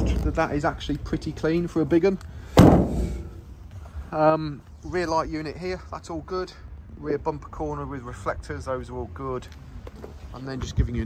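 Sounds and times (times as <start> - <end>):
steel van door slamming: 2.5 - 3.4.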